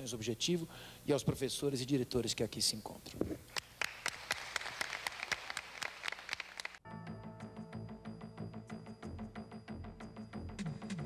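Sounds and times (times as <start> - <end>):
audience applauding: 3.6 - 6.8.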